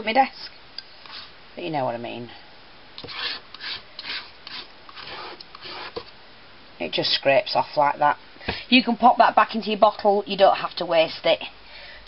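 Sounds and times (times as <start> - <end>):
metal knife scraping wax: 1.0 - 1.3, 3.0 - 6.1.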